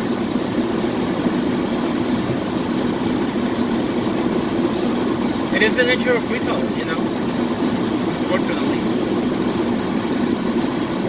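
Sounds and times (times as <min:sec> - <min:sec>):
car road noise from inside: 0:00.0 - 0:11.0.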